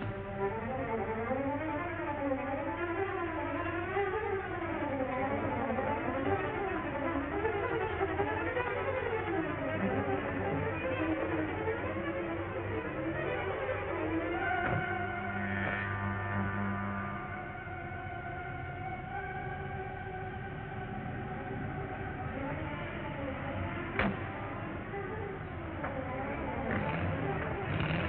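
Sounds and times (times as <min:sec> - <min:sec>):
orchestral strings playing runs: 0:00.0 - 0:28.0.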